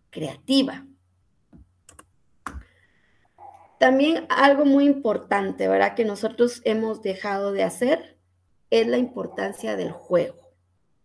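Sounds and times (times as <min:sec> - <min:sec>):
computer keyboard keystrokes: 0:01.9 - 0:02.7.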